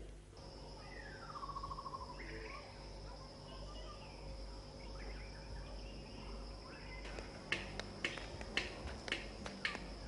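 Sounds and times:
insects droning: 0.0 - 10.0
bird trill: 0.8 - 2.8.

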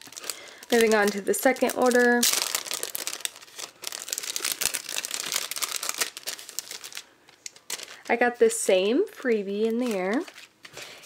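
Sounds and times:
plastic packaging crinkling: 0.0 - 8.5, 9.2 - 11.0.

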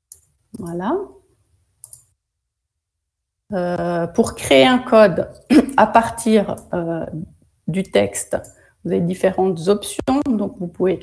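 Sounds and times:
computer mouse click: 0.1 - 0.3, 1.8 - 2.1, 8.4 - 8.6.

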